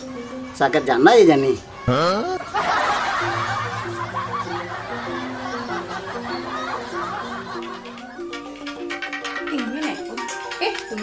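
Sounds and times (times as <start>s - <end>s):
background music low notes: 0.0s - 11.0s
canned laughter: 2.0s - 8.1s.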